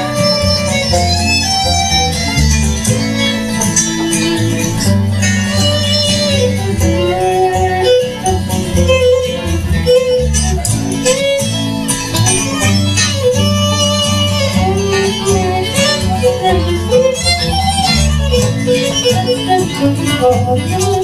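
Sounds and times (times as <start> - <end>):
bowed fiddle melody: 0.0 - 21.0
plucked upright bass: 0.0 - 21.0
strummed acoustic guitar: 0.0 - 21.0.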